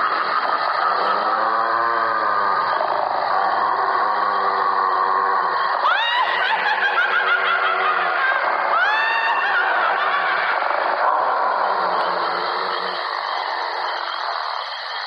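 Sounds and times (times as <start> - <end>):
sinister laughter: 0.0 - 14.6
eerie sustained background: 0.0 - 15.0
rising wail: 0.0 - 15.0.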